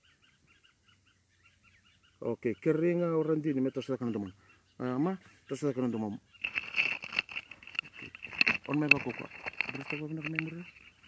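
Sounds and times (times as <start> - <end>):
faint bird chirping: 0.0 - 11.0.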